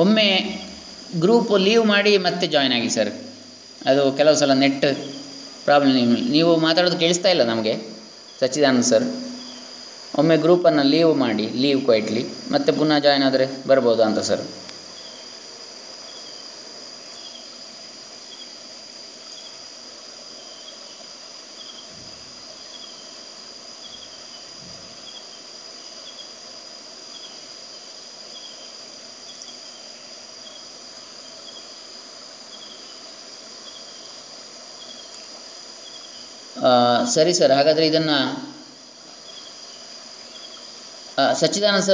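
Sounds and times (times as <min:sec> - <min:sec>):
crickets chirping: 0:00.0 - 0:41.9
high-pitched whine and hiss: 0:00.0 - 0:41.9.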